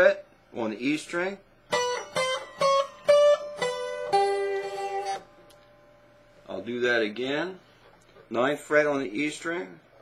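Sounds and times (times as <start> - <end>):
slide acoustic guitar: 1.7 - 5.3.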